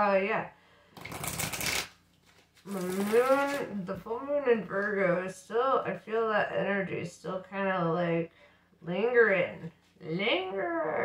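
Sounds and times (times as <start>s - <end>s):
woman speaking: 0.0s - 0.5s, 2.7s - 11.0s
cards shuffling: 1.0s - 3.7s.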